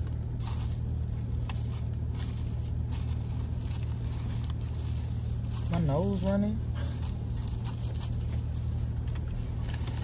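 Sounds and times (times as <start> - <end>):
car engine idling hum: 0.0 - 10.0
rustling: 0.0 - 10.0.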